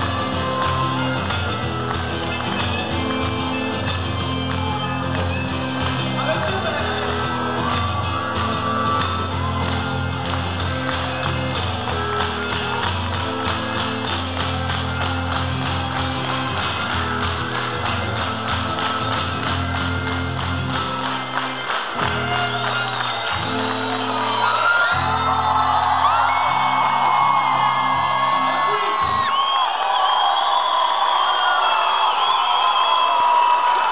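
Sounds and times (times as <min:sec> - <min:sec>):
live band with acoustic guitar: 0:00.0 - 0:29.3
crowd whooping and cheering: 0:00.0 - 0:33.9.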